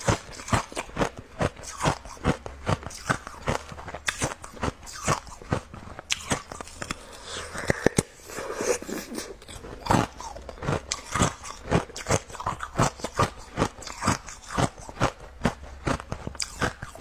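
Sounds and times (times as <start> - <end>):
ice being crunched and chewed: 0.0 - 17.0.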